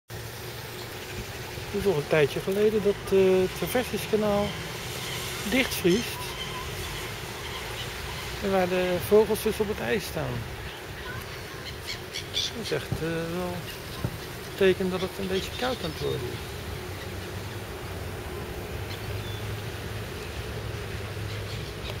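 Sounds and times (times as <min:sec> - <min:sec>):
outdoor background noise: 0:00.1 - 0:22.0
soft even hiss: 0:00.2 - 0:22.0.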